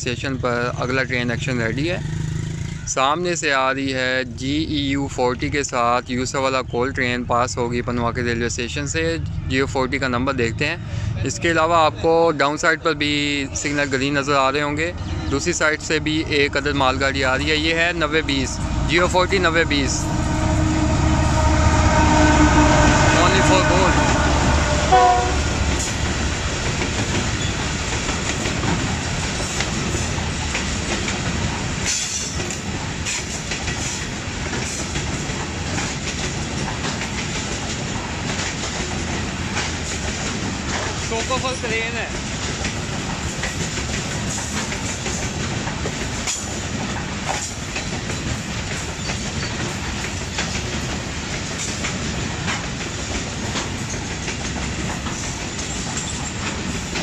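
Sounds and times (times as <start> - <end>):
freight train rumbling past: 0.0 - 57.0
wheels clicking over rail joints: 24.9 - 57.0.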